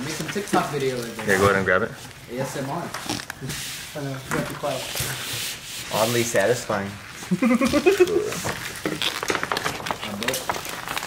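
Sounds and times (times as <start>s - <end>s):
vinyl peeling off backing sheet: 7.6s - 11.0s.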